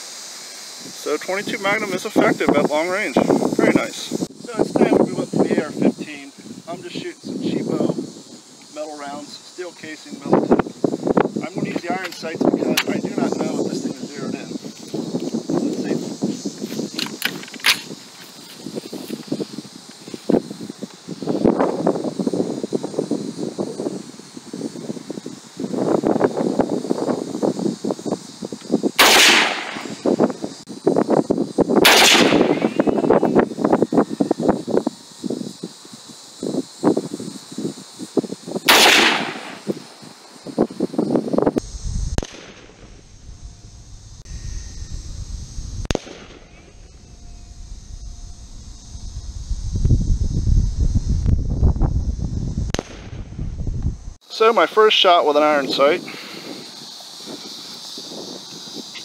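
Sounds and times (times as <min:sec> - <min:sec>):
rifle gunshots: 0:29.0 - 0:30.0, 0:31.8 - 0:32.7, 0:38.7 - 0:39.6.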